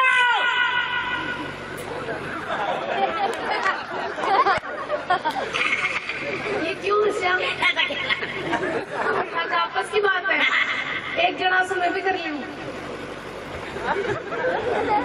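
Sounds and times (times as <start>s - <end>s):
people talking over public address: 6.0s - 12.8s.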